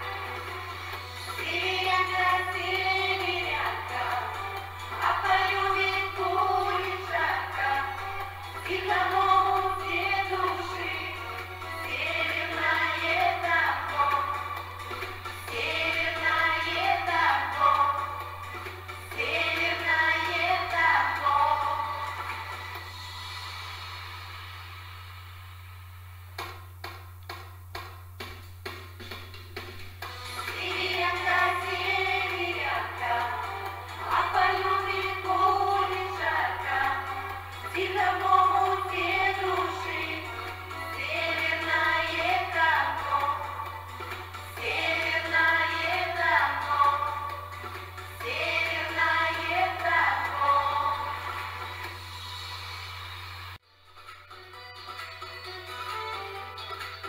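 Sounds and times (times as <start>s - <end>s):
low hum and hiss: 0.0s - 53.6s
backing music: 0.0s - 57.0s
women's vocal group singing: 1.4s - 11.2s, 11.8s - 14.6s, 15.4s - 18.3s, 19.0s - 22.4s, 30.4s - 43.9s, 44.5s - 47.4s, 48.1s - 51.7s
hand claps: 26.4s - 29.8s.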